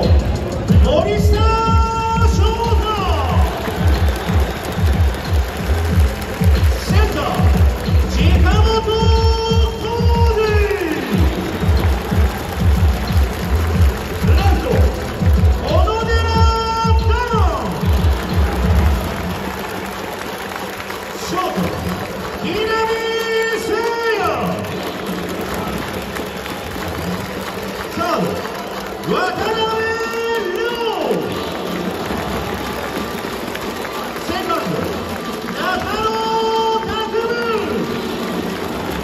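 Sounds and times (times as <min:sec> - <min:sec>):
thumping beat music: 0:00.0 - 0:20.4
crowd noise: 0:00.0 - 0:39.0
echoing announcer's voice: 0:00.0 - 0:39.0
people clapping: 0:00.0 - 0:39.0.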